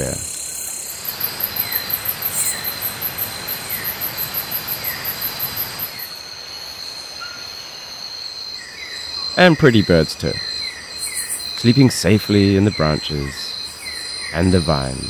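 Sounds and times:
rapid high pulsed insect chirp: 0.0 - 15.0
steady high insect trills: 0.0 - 15.0.

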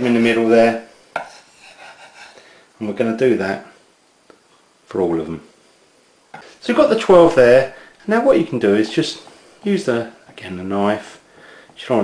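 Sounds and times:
knife scraping under pastry: 1.2 - 2.4.

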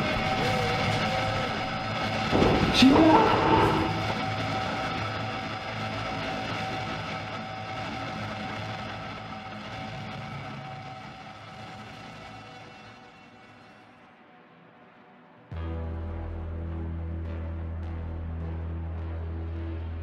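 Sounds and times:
dark ominous film score: 0.0 - 20.0.

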